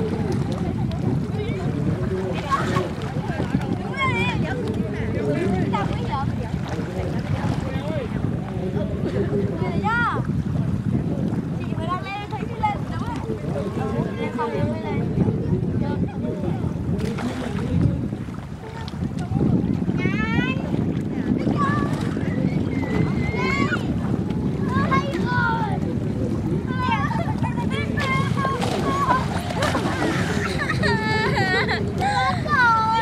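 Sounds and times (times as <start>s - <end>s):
wind noise on microphone: 0.0s - 33.0s.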